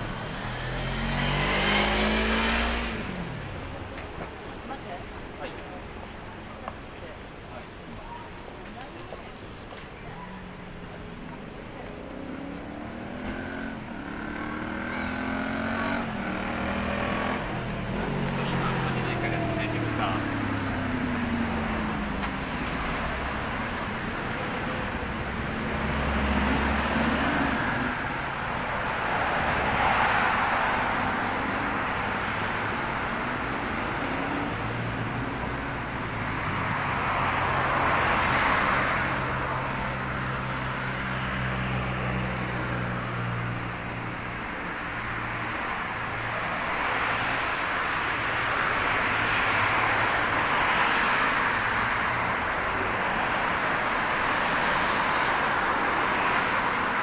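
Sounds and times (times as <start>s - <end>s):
cars passing: 0.0s - 57.0s
faint steady high tone: 1.8s - 16.5s.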